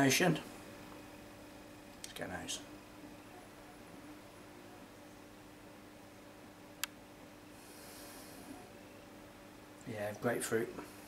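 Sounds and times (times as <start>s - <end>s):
faint steady hum: 0.0s - 11.0s
soft hiss: 0.0s - 11.0s.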